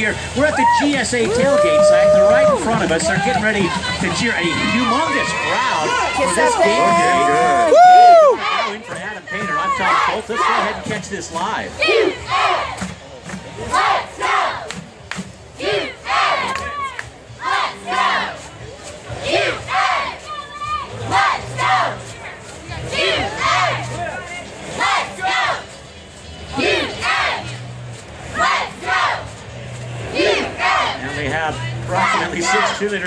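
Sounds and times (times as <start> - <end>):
crowd: 0.0 - 33.0
cheerleaders shouting a cheer: 3.7 - 10.8, 11.8 - 12.8, 13.7 - 14.7, 15.6 - 18.4, 19.2 - 22.1, 22.8 - 23.9, 24.7 - 25.6, 26.5 - 27.5, 28.3 - 29.3, 30.1 - 31.0.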